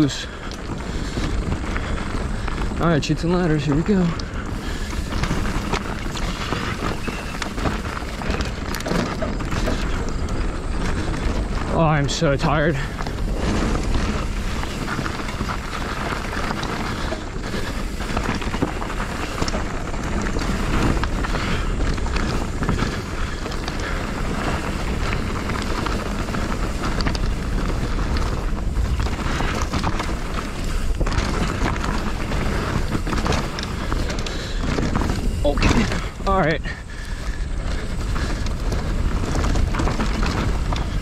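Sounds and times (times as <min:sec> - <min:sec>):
bike knocks and rattles: 0:00.0 - 0:41.0
tyres rumbling on dirt and rock: 0:00.0 - 0:41.0
wind buffeting microphone: 0:00.0 - 0:41.0.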